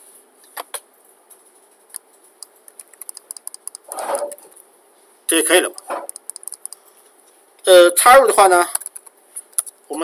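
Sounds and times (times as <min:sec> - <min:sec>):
computer keyboard key clicks: 0:01.9 - 0:03.9, 0:06.1 - 0:06.8, 0:08.7 - 0:09.8.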